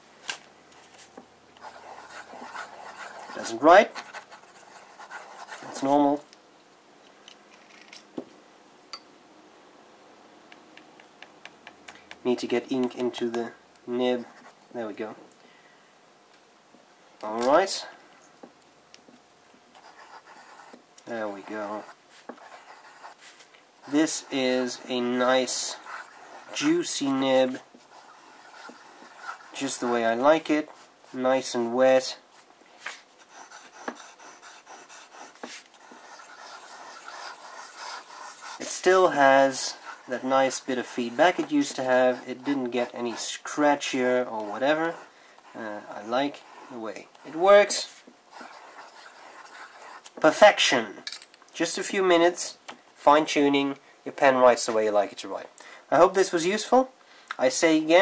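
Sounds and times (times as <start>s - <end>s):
pen nib scratching on paper: 1.6s - 5.8s, 19.8s - 20.8s, 21.4s - 23.2s, 23.8s - 30.0s, 33.2s - 43.6s, 46.3s - 50.1s.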